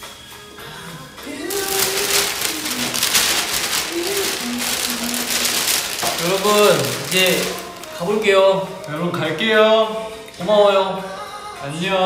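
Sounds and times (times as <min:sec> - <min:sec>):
plastic bags crinkling: 0:01.3 - 0:09.4.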